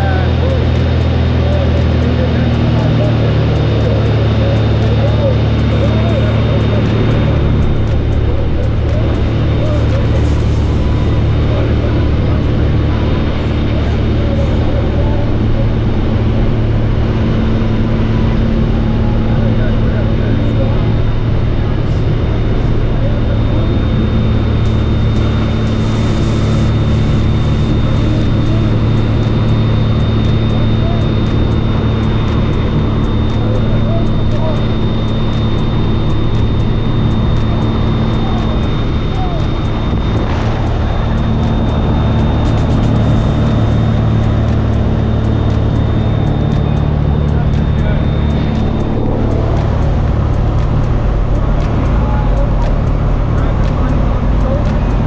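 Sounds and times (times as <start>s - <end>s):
propeller plane engine droning: 0.0s - 55.0s
rushing wind: 3.2s - 55.0s.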